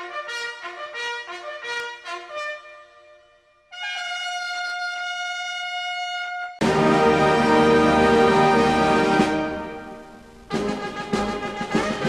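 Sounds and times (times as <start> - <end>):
long high brass note: 0.0 - 12.0.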